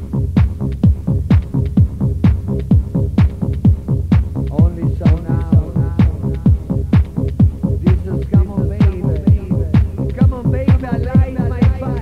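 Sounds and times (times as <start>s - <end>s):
deep kick drum: 0.0s - 12.0s.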